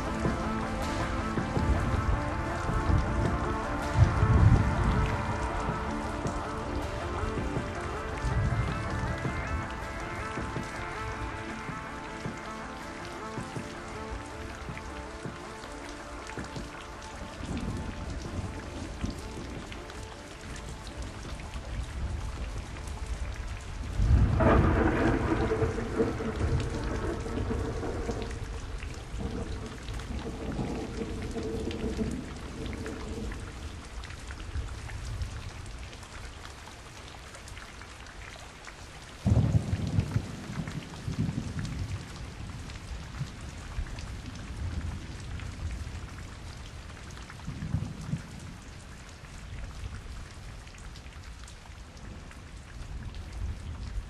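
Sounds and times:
rolling thunder: 0.0 - 12.5, 21.8 - 35.6, 39.2 - 46.6
steady rain: 0.0 - 54.0.

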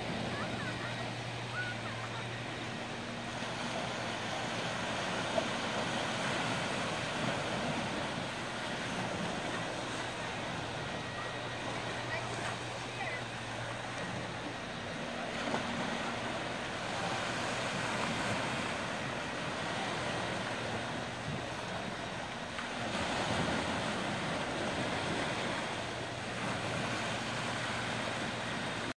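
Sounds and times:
waves washing onto sand: 0.0 - 28.9.

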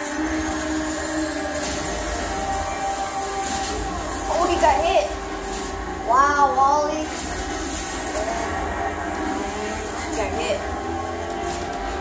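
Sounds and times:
action scene music: 0.0 - 12.0.

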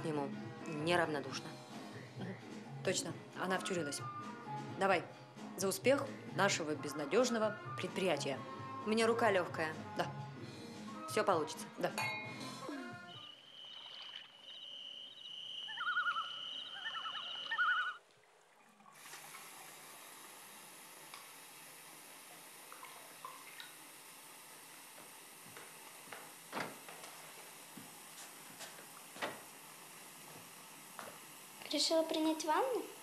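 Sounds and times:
high-pitched insect trill: 12.4 - 18.0
small water splashes: 13.4 - 14.9, 22.6 - 23.9
tap running into bathtub: 22.7 - 23.8, 24.7 - 29.6.

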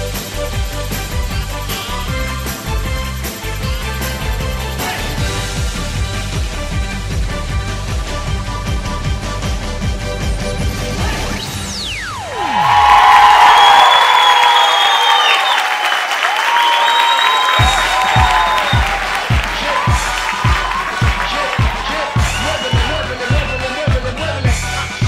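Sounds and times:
audience cheering and applauding: 12.2 - 25.0
dance track with kick-drum beat: 17.5 - 25.0.

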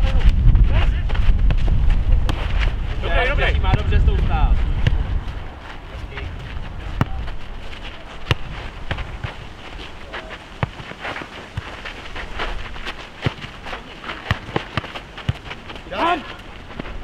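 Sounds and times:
ball kicked and bouncing on asphalt: 0.0 - 17.0
players' footsteps: 0.0 - 17.0.

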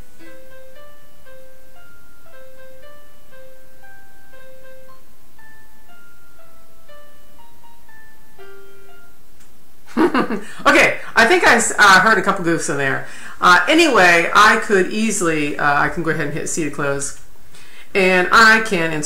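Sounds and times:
computer playback of melody: 0.0 - 9.6.

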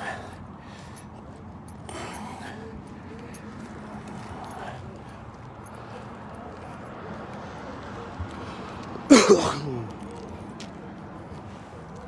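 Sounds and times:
faint distant voices: 0.0 - 12.0
light footsteps on pavement: 0.0 - 12.0.

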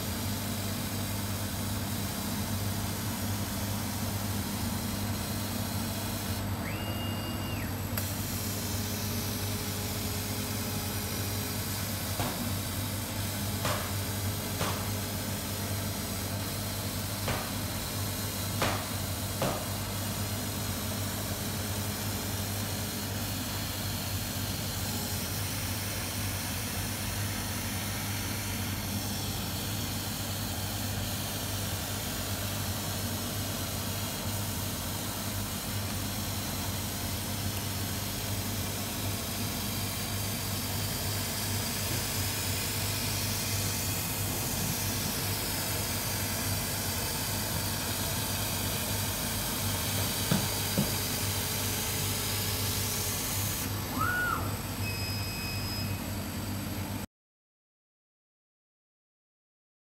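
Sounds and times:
laser cutter hum and hiss: 0.0 - 57.0
cutting head whines: 6.6 - 7.8.

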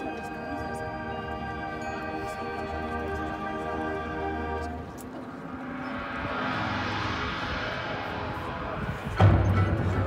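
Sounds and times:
whooshing sound effect: 5.3 - 10.0
marching band playing: 5.5 - 10.0.

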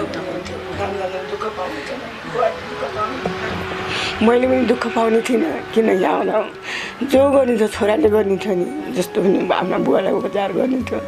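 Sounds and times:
woman speaking: 4.1 - 11.0.

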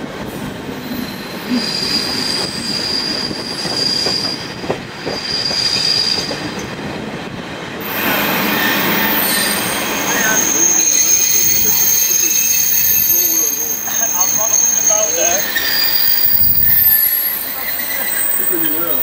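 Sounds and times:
train rolling rumble: 0.0 - 19.0
train wheels squealing on rails: 0.4 - 6.8, 7.8 - 19.0.

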